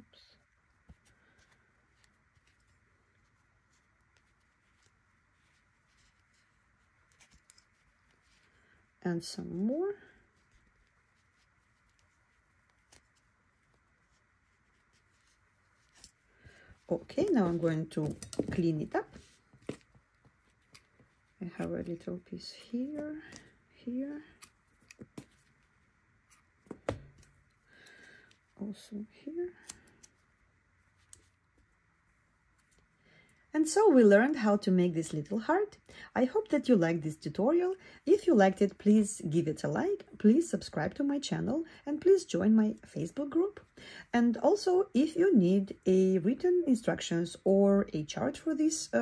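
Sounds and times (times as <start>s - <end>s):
yarn rustling: 0.0s - 35.3s.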